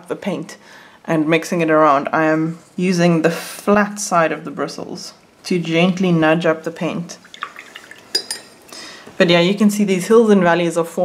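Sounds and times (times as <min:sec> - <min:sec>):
small water splashes: 0:07.2 - 0:08.6
paintbrush clinking against glass jar: 0:07.4 - 0:08.6.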